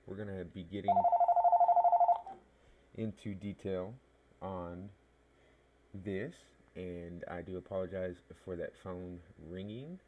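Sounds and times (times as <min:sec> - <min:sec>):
electronic telephone ring: 0:00.9 - 0:02.4.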